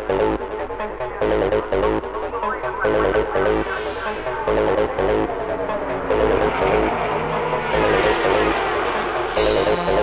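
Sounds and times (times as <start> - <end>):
fast electronic dance music: 0.0 - 6.8.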